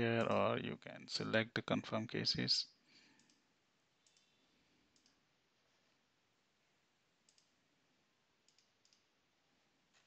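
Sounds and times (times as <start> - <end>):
faint computer mouse clicks: 3.1 - 3.4, 4.0 - 5.2, 7.2 - 7.6, 8.5 - 9.1.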